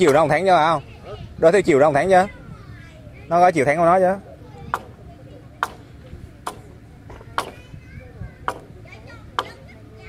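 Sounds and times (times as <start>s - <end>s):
blade chopping into wood: 6.4s - 6.7s, 8.5s - 8.7s, 9.4s - 9.6s.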